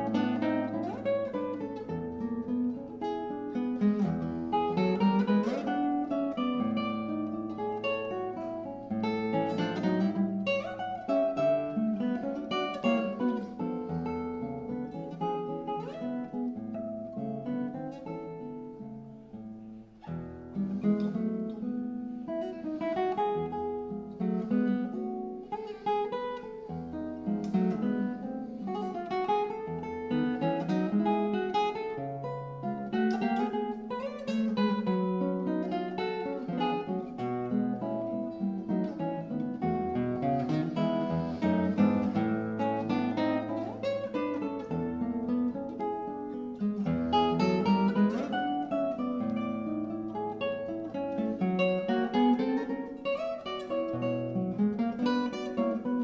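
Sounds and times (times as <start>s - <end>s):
classical guitar playing: 0.0s - 56.0s.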